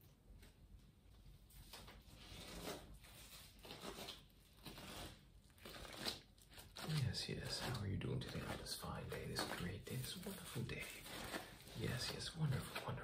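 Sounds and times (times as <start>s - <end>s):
paper crinkling and rustling: 1.4s - 13.0s.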